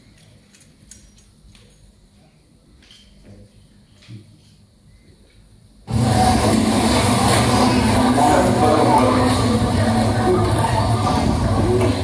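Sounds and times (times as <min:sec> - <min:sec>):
distorted noise music: 0:05.9 - 0:12.0
steady low drone: 0:05.9 - 0:12.0.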